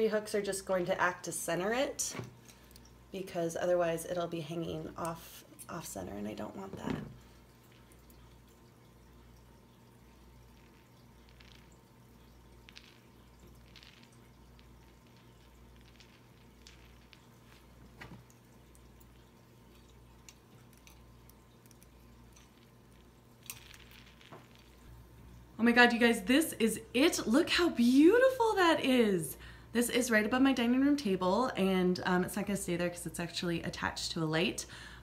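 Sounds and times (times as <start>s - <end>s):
low room hum: 0.0s - 35.0s.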